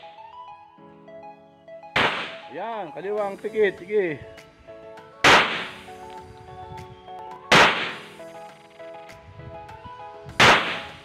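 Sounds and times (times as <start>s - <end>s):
pistol shots: 2.0s - 2.5s, 5.2s - 5.8s, 7.5s - 8.1s, 10.4s - 11.0s.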